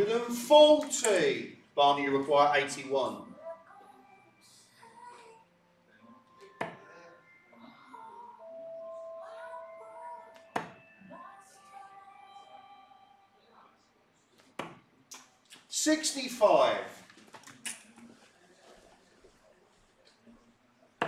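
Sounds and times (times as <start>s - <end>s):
darts striking a dartboard: 10.6s - 10.8s, 14.5s - 14.8s.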